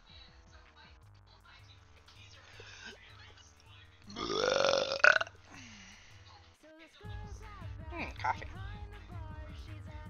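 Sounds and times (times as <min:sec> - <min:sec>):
person burping: 0:04.1 - 0:05.8.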